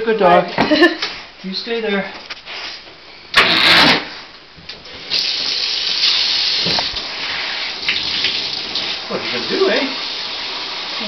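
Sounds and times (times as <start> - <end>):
shower sprayer water hissing: 4.9 - 11.0.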